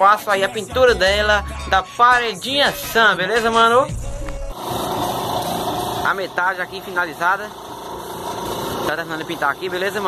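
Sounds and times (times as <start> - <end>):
air compressor running: 3.9 - 10.0
paint spray gun hissing: 4.5 - 10.0.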